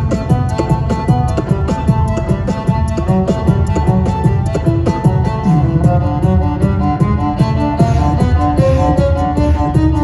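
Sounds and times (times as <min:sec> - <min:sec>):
bowed cello: 0:00.1 - 0:10.0.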